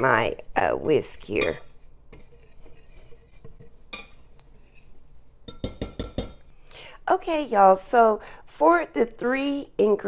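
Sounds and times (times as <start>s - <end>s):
whisk stirring flour in bowl: 0.0s - 6.4s.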